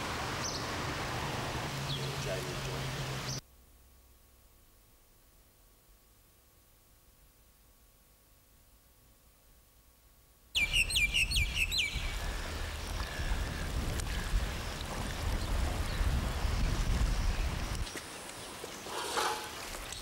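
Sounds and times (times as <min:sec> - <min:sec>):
bird chirping: 0:10.6 - 0:13.0.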